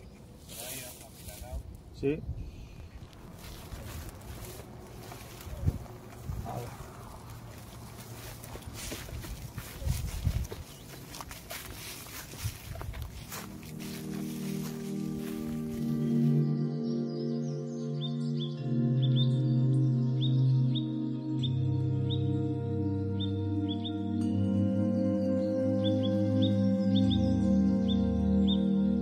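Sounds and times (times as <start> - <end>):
outdoor background noise: 0.0 - 16.9
slow music with held chords: 11.1 - 29.0.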